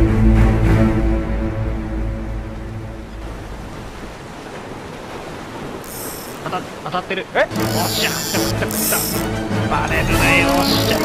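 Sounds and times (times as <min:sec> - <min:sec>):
sea waves and surf washing: 0:00.0 - 0:11.0
wind: 0:00.0 - 0:11.0.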